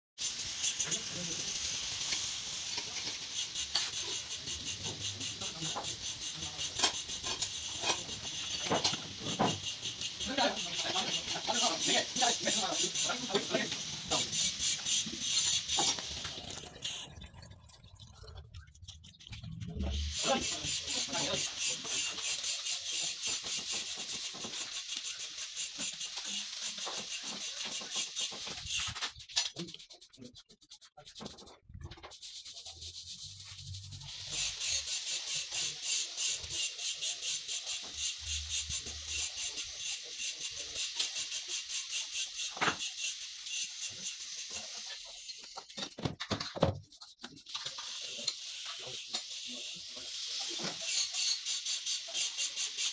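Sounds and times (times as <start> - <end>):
paintbrush scrubbing on wood: 26.7 - 35.4.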